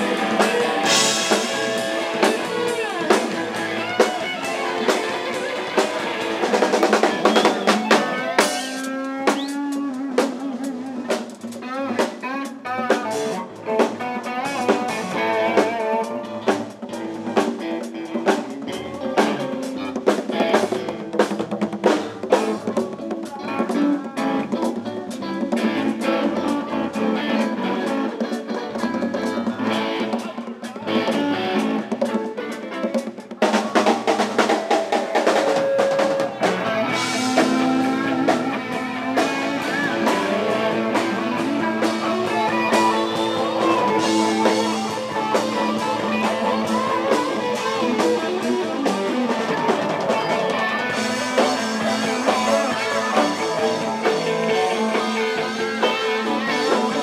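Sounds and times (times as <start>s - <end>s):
conga: 0.0s - 57.0s
drums: 0.0s - 57.0s
electric guitar: 0.0s - 57.0s
live band playing: 0.0s - 57.0s.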